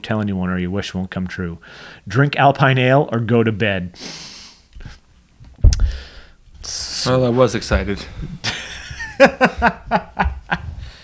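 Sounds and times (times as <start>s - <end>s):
man chuckling: 8.4s - 10.8s.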